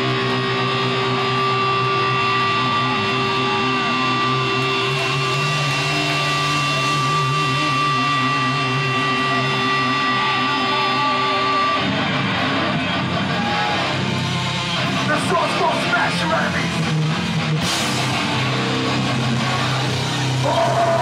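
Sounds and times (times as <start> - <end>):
electric guitar feedback whine: 0.0 - 21.0
wavering low guitar notes: 0.0 - 21.0.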